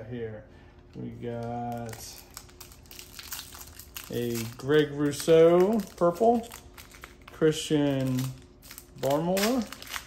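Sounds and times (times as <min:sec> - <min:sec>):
foil wrapper crinkling: 0:01.2 - 0:10.0.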